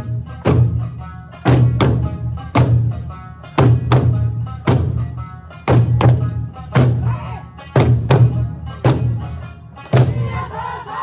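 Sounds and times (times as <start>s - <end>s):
large drums beating in unison: 0.0s - 10.9s.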